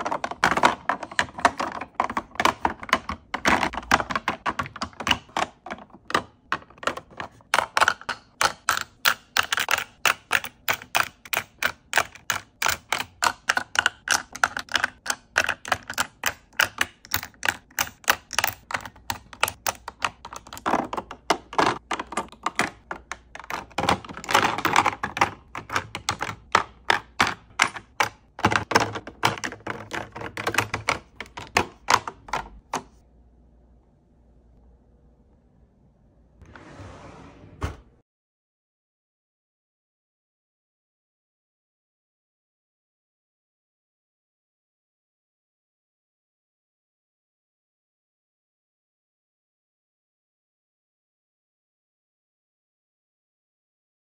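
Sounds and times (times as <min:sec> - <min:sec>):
plastic tubes clicking on acrylic bins: 0:00.0 - 0:33.0.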